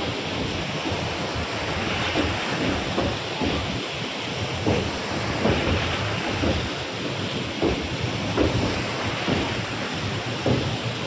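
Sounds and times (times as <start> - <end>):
floodwater flowing: 0.0 - 11.0
wind buffeting microphone: 0.0 - 11.0.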